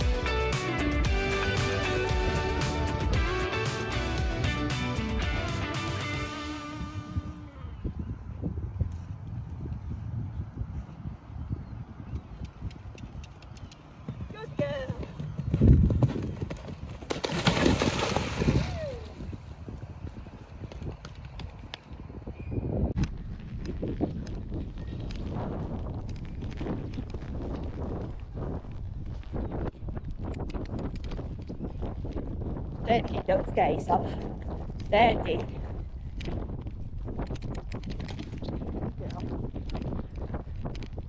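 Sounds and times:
horse hoofbeats on sand: 0:12.9 - 0:18.5.

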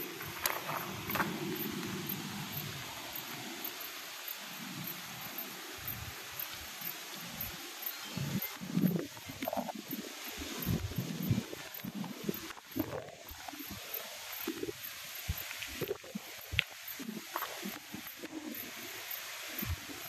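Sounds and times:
wind buffeting microphone: 0:08.1 - 0:20.0.

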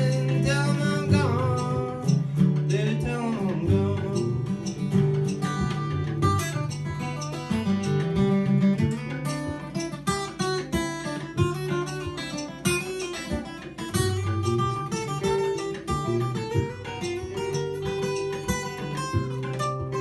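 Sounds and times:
acoustic guitar strummed and picked: 0:00.0 - 0:20.0.

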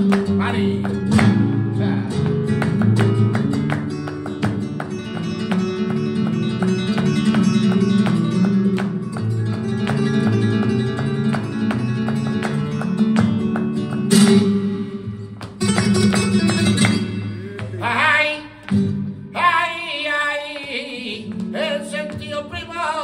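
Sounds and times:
flamenco guitar: 0:00.0 - 0:23.0.

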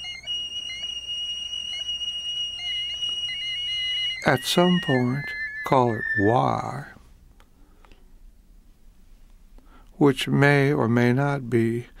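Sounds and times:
high-pitched electronic tone: 0:00.0 - 0:06.9
faint wavering tone: 0:00.0 - 0:07.0
short chirps: 0:00.6 - 0:06.9.

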